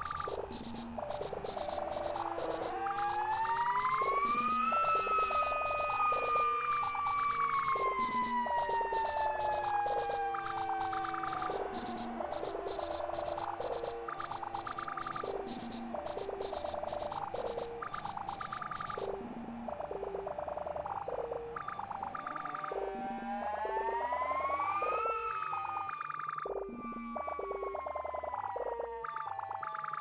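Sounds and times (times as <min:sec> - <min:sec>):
gliding held synth tone: 0:00.0 - 0:19.1
hi-hat ticks: 0:00.0 - 0:19.1
looping synth blips: 0:00.0 - 0:23.0.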